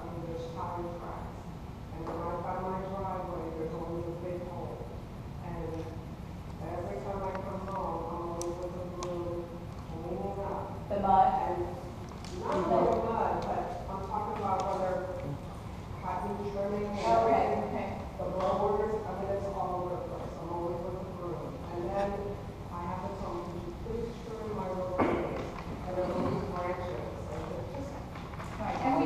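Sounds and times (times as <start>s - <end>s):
echoing indistinct speech: 6.6s - 15.4s.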